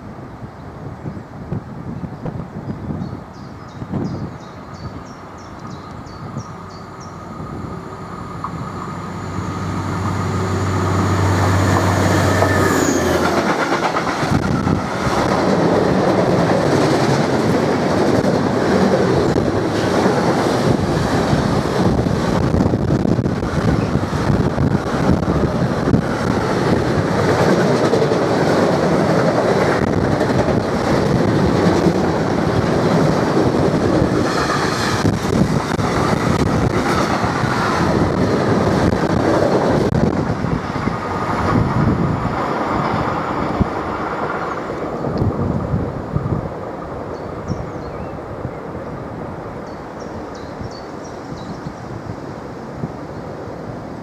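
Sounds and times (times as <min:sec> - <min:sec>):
train wheels rumbling on rails: 0:01.0 - 0:54.0
locomotive engine hum: 0:05.2 - 0:47.4.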